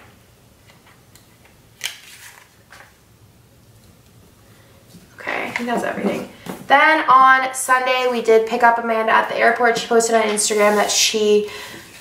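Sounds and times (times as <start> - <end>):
paper rustling: 1.8 - 3.0.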